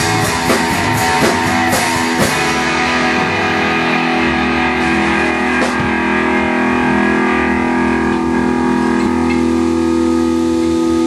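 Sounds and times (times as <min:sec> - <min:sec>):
sustained electric guitar drone: 0:00.0 - 0:11.0.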